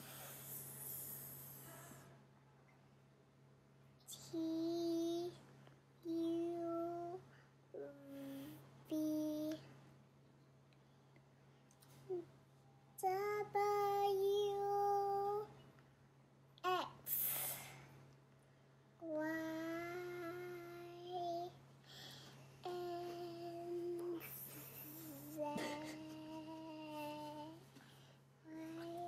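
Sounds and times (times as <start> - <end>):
girl singing: 4.1 - 5.4, 6.0 - 7.2, 7.8 - 9.6, 13.0 - 15.6, 16.6 - 17.5, 19.0 - 21.6, 22.6 - 27.7, 28.4 - 29.0.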